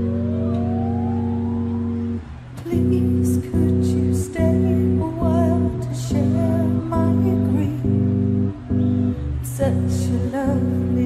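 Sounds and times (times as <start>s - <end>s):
thin tone sliding upward: 0.0s - 2.2s
low guitar chord held: 0.0s - 10.3s.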